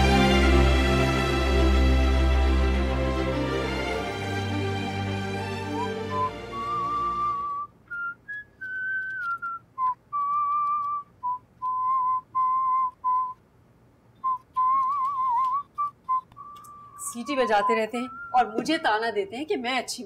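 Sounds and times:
man whistling a tune: 5.7s - 13.4s, 14.2s - 18.6s.

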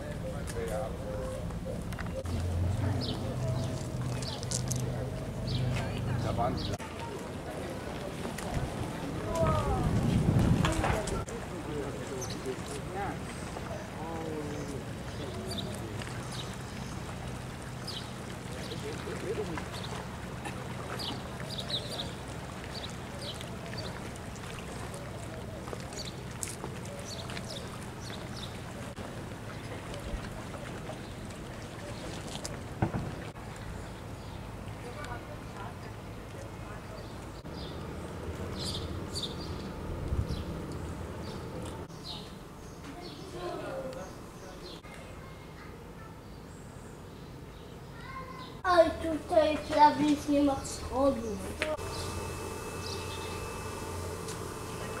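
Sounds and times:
wind noise on microphone: 8.5s - 11.3s
steady low hum: 37.1s - 42.7s, 48.8s - 55.0s
low hum: 50.1s - 55.0s
faint high chirp: 51.8s - 55.0s.

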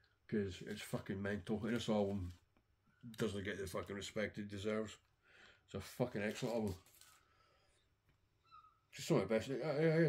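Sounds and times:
faint brief squeak: 8.4s - 8.9s.

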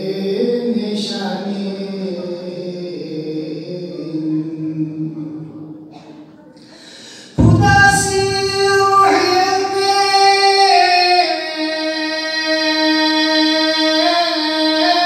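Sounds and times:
man singing unaccompanied: 7.3s - 15.0s.

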